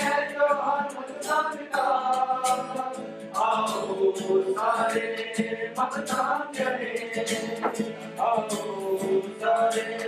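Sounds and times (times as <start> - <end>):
group of voices singing: 0.0 - 10.0.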